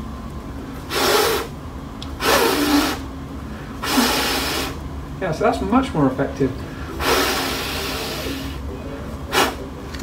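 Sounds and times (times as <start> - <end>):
breath blown through face mask: 0.9 - 1.6, 2.2 - 4.8, 6.9 - 8.6, 9.3 - 9.6.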